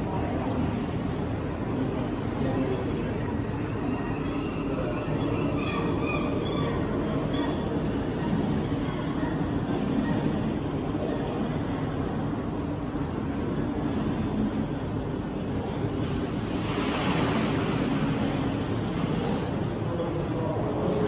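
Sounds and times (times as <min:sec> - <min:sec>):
ocean waves washing: 0:13.6 - 0:20.8
wave breaking: 0:16.0 - 0:19.8.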